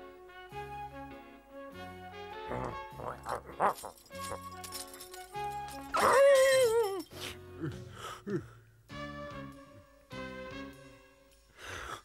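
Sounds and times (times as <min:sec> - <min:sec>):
background music: 0:00.0 - 0:12.0
cartoon dog whining: 0:05.9 - 0:07.1.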